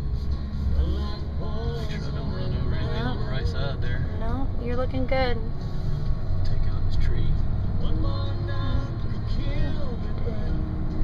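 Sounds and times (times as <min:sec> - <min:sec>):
music playing: 0:00.0 - 0:11.0
vehicle engine and road rumble: 0:00.0 - 0:11.0.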